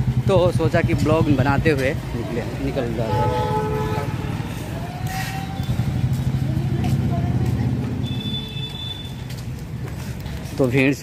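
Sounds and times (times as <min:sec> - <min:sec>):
vehicle engine running: 0:00.0 - 0:04.8.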